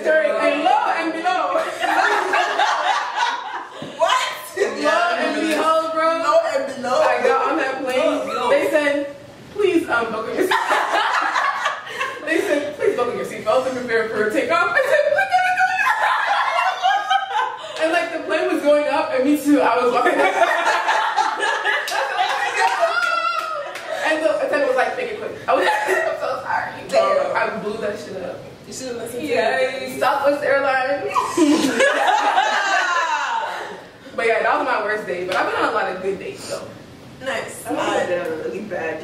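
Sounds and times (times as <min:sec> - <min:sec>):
women laughing together: 0:01.5 - 0:04.8, 0:10.4 - 0:13.0, 0:14.7 - 0:17.9, 0:20.0 - 0:24.2, 0:31.1 - 0:33.8.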